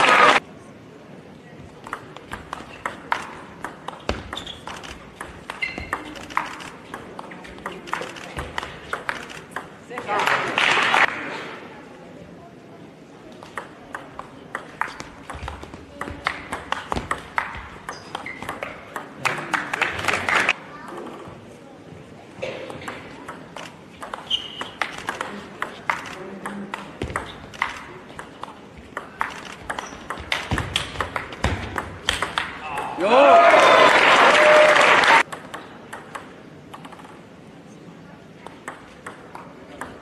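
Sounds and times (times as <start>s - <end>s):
low hall murmur: 0.0s - 40.0s
table tennis ball clicks: 1.8s - 10.1s, 22.9s - 32.6s, 35.2s - 37.2s.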